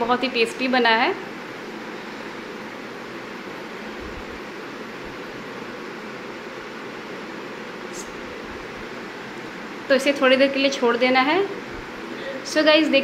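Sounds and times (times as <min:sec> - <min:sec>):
steady background hiss: 0:00.0 - 0:13.0.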